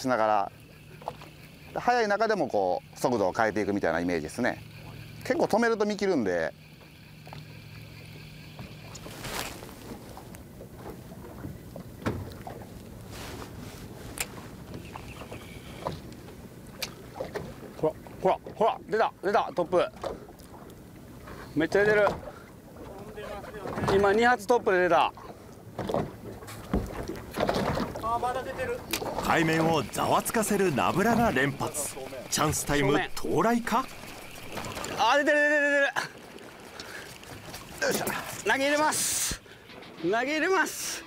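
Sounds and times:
boat engine idling: 0:00.0 - 0:41.0
faint water: 0:00.0 - 0:41.0.

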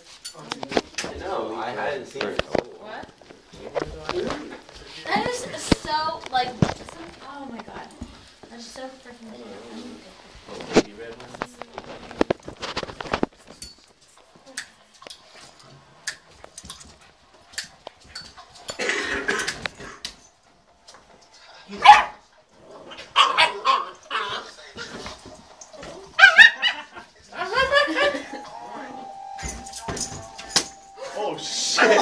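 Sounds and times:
dogs scuffling: 0:00.0 - 0:14.4, 0:23.0 - 0:28.3
dogs barking and yipping: 0:21.8 - 0:22.2, 0:22.9 - 0:28.3.

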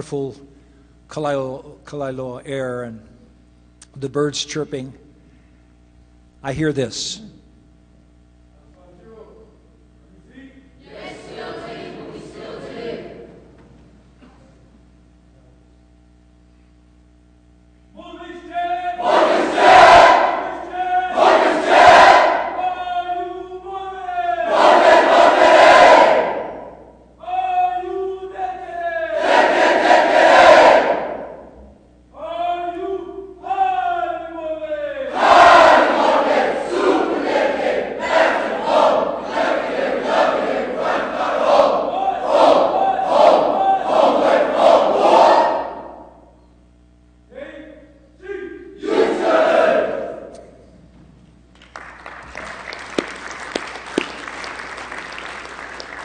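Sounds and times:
group chanting marching cadence: 0:10.8 - 0:13.5, 0:18.9 - 0:23.1, 0:24.2 - 0:27.0, 0:29.0 - 0:31.6, 0:35.0 - 0:46.2, 0:48.3 - 0:50.5.

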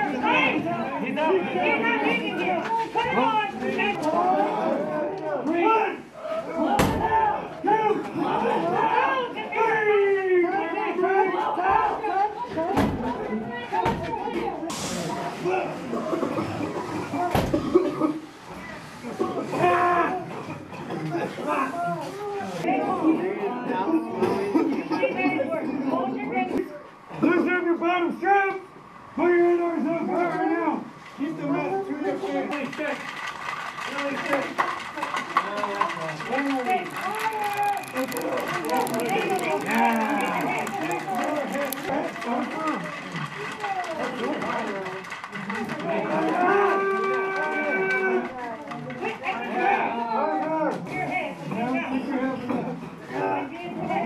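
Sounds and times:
quiet voices: 0:35.0 - 0:50.6.

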